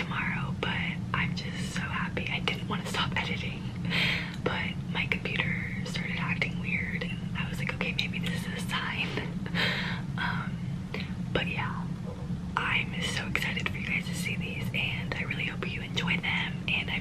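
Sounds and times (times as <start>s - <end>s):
woman whispering: 0.0s - 3.6s, 4.4s - 9.4s, 10.2s - 11.9s, 12.6s - 17.0s
steady low hum: 0.0s - 17.0s.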